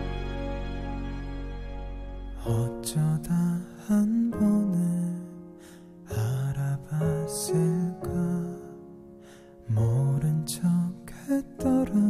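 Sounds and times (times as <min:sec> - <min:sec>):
gentle instrumental accompaniment: 0:00.0 - 0:12.0
man singing softly: 0:02.3 - 0:12.0.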